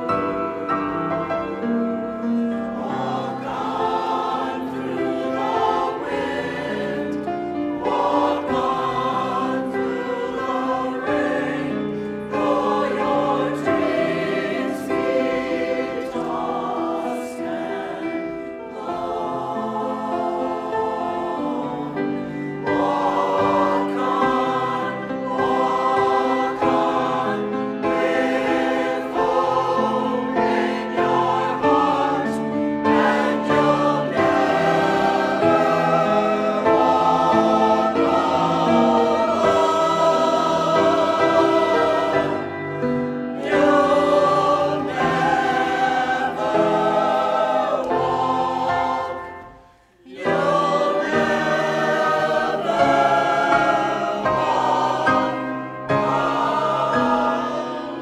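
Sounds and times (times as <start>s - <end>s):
choir singing: 0.0s - 58.0s
grand piano: 0.0s - 58.0s.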